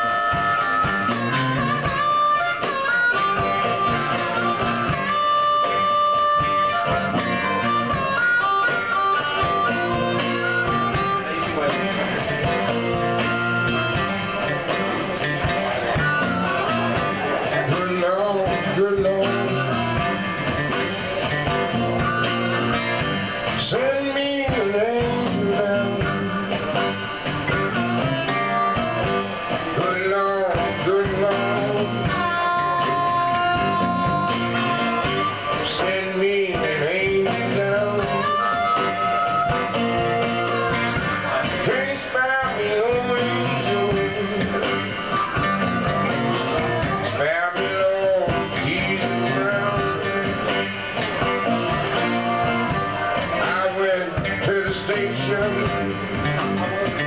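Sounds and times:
acoustic and electric guitars: 0:00.0 - 0:57.0
drums: 0:00.0 - 0:57.0
harmonica lead: 0:00.0 - 0:57.0.

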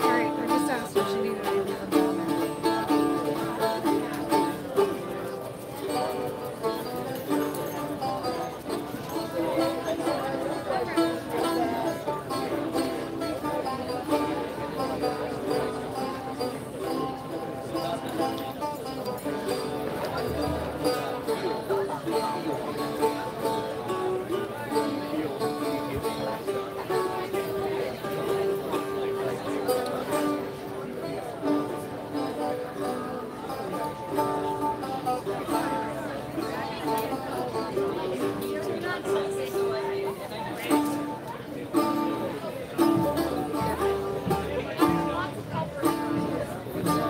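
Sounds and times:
crowd chatter: 0:00.0 - 0:47.0
plucked string dance music: 0:00.0 - 0:47.0.

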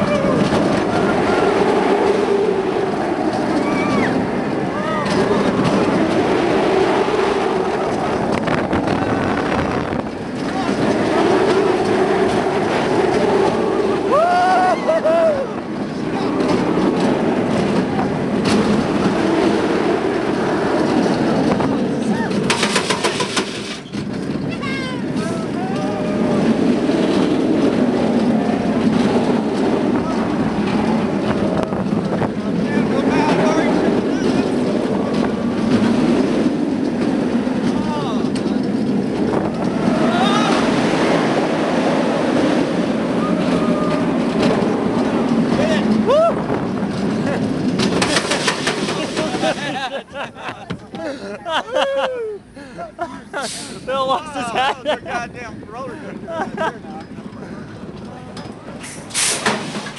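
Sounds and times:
wind on microphone: 0:00.0 - 0:22.7, 0:23.3 - 0:50.9
roller coaster wheels roaring on rail: 0:00.0 - 0:59.9
riders yelling: 0:14.1 - 0:15.6, 0:24.7 - 0:26.6, 0:39.7 - 0:40.8, 0:43.2 - 0:44.3, 0:51.0 - 0:52.5
brief rapid rattle: 0:22.4 - 0:24.0, 0:58.8 - 0:59.9.

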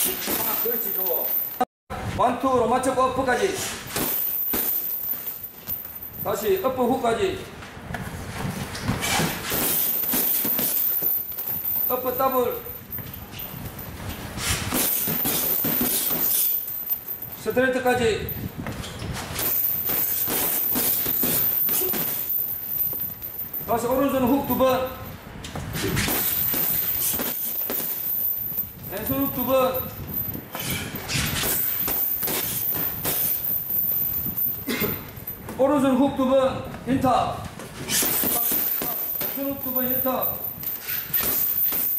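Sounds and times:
gloved punches hitting heavy bag: 0:00.0 - 0:01.0, 0:03.9 - 0:04.9, 0:09.3 - 0:11.5, 0:14.7 - 0:16.3, 0:19.4 - 0:22.4, 0:26.0 - 0:28.1, 0:31.4 - 0:33.4, 0:38.0 - 0:41.9.

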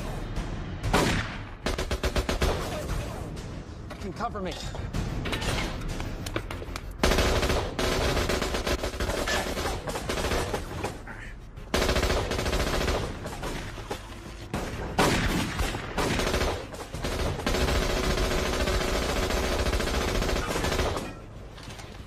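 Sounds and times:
rapid automatic gunfire: 0:00.9 - 0:02.9, 0:07.0 - 0:10.8, 0:11.7 - 0:13.8, 0:14.6 - 0:21.2.

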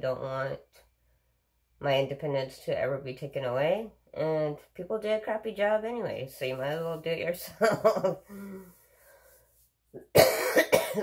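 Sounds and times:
woman coughing: 0:10.0 - 0:11.0.

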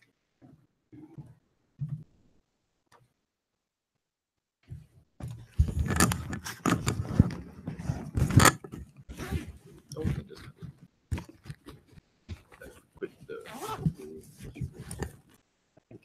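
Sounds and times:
lavalier microphone handling rustles: 0:04.7 - 0:15.4.

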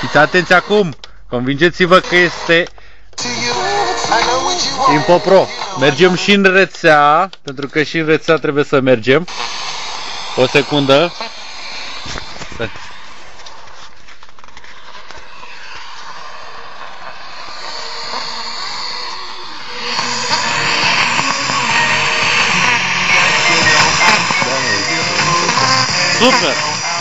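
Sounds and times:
radio static hiss: 0:00.0 - 0:00.9, 0:01.8 - 0:06.4, 0:10.3 - 0:14.0, 0:16.2 - 0:27.0
voice and music from radio: 0:00.0 - 0:00.9, 0:01.6 - 0:06.6, 0:17.7 - 0:27.0.

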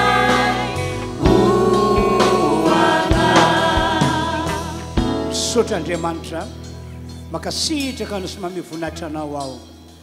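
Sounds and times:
church choir singing: 0:00.0 - 0:05.1
drum strikes: 0:00.0 - 0:05.3.

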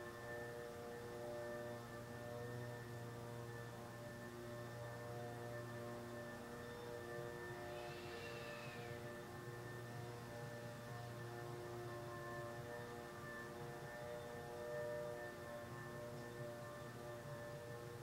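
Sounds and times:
faint drone of sustained tones: 0:00.0 - 0:18.0
low hum: 0:00.0 - 0:18.0.

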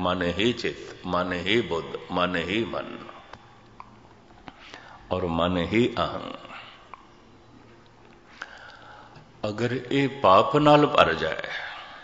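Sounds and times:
man speaking: 0:00.0 - 0:03.3, 0:05.1 - 0:06.7, 0:09.4 - 0:11.8
faint steady hiss: 0:00.0 - 0:12.0
soft in-breath: 0:04.4 - 0:05.1, 0:08.2 - 0:09.3.

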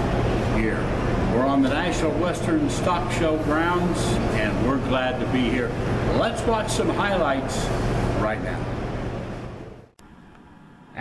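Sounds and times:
hall hum and hiss: 0:00.0 - 0:11.0.

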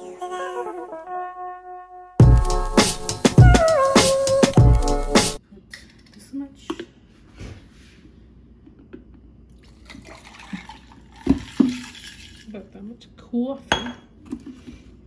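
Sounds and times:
song with singing voice: 0:00.0 - 0:01.1
coffee pouring into glass cup: 0:09.6 - 0:12.5.

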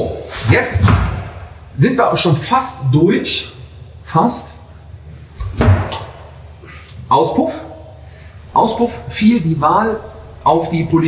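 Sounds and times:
dull thump: 0:00.8 - 0:01.6.

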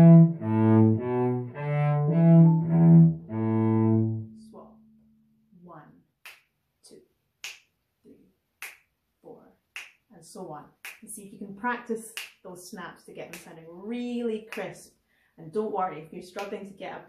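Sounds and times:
bowed cello: 0:00.0 - 0:05.0
finger snaps: 0:06.2 - 0:06.5, 0:07.4 - 0:07.7, 0:08.6 - 0:08.9, 0:09.8 - 0:10.0.

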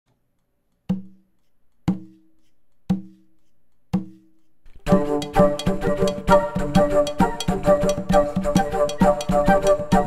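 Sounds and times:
woody percussive knocks: 0:00.9 - 0:03.3, 0:03.9 - 0:10.0.

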